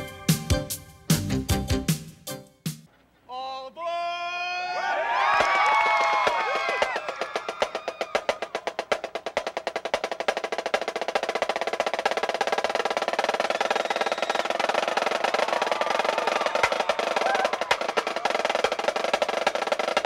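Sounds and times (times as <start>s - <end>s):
snare drum roll: 6.1s - 20.0s.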